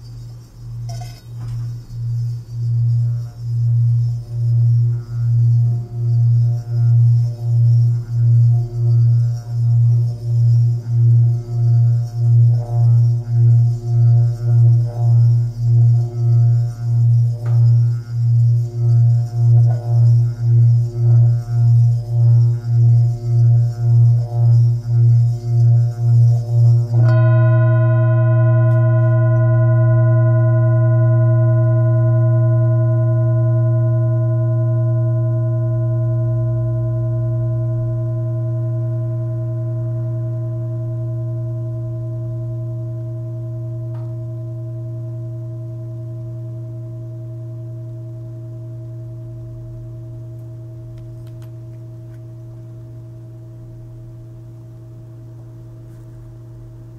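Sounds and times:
mallet rubbing bowl rim: 0.0 - 30.8
singing bowl humming: 0.0 - 56.9.

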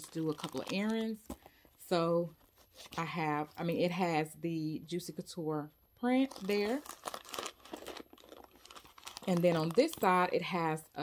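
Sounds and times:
handbag rustling and crinkling: 0.0 - 4.0, 6.2 - 10.7.

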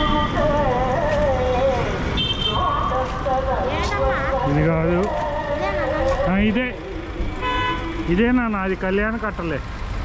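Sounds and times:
road traffic: 0.0 - 10.0
people talking: 3.1 - 6.8, 8.1 - 9.6.

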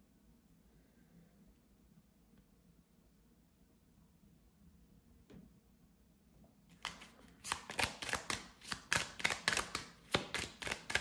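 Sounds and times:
cards being shuffled by hand: 6.7 - 11.0.

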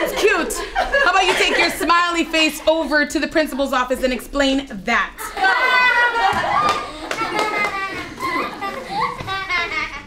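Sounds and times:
children's voices overlapping: 5.2 - 10.0.

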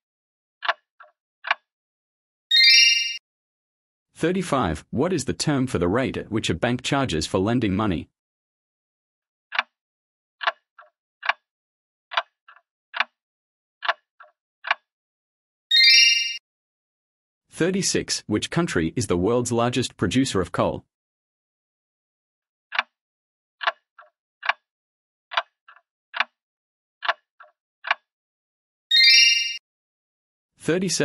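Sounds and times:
bright ringing chime: 2.5 - 3.2, 15.7 - 16.4, 28.9 - 29.6.

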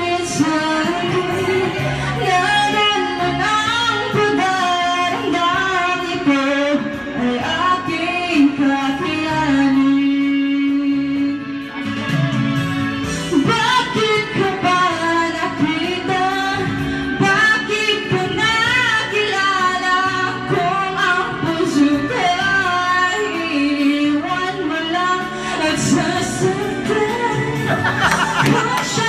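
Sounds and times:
instrumental accompaniment: 0.0 - 19.5
woman singing into microphone: 0.0 - 29.0.

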